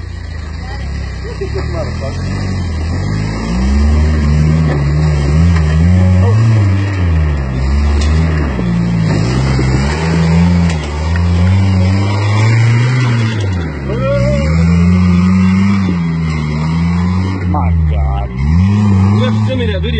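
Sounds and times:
pickup engine revving: 0:00.0 - 0:19.9.

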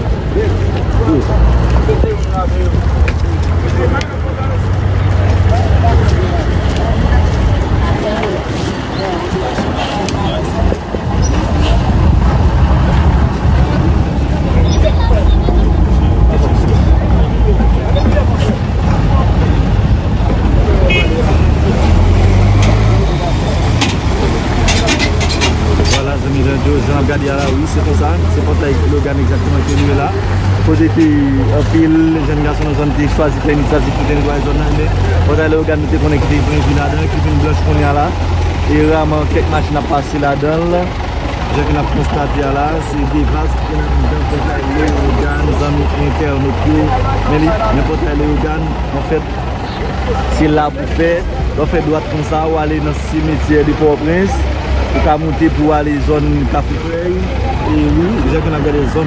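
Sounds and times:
people's voices: 0:00.0 - 0:59.0
traffic noise: 0:00.0 - 0:59.0
vehicle engines rumbling: 0:00.0 - 0:59.0.

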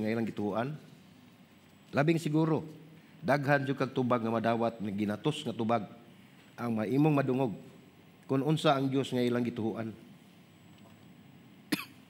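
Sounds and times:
man coughing: 0:11.7 - 0:12.0.

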